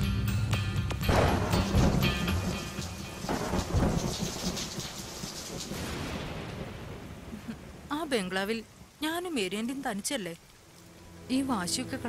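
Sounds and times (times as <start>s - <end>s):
thunder rumble: 1.1s - 9.0s
steady rain: 1.1s - 12.0s.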